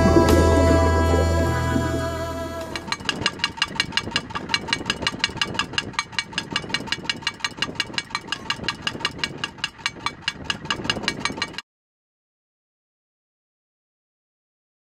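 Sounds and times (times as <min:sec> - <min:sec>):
beater clattering on metal can: 0:02.8 - 0:11.6.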